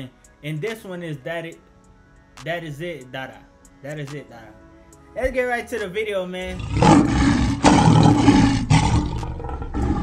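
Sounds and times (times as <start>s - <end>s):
loud rough roaring: 6.5s - 10.0s.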